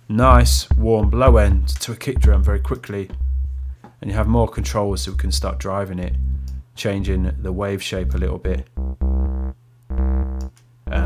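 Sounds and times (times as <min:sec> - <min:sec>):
low synth kick drum tone: 0:00.2 - 0:11.0.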